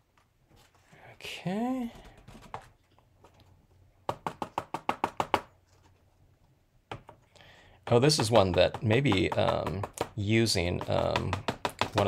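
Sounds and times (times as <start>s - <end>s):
sharp taps on card: 10.8s - 12.0s.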